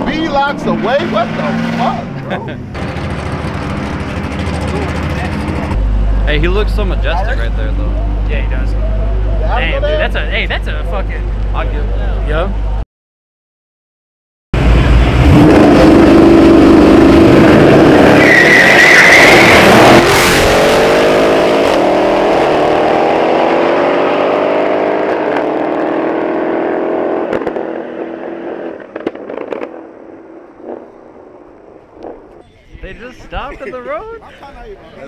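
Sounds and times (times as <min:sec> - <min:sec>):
racing car engines at full throttle: 0:00.0 - 0:12.8, 0:14.6 - 0:32.4.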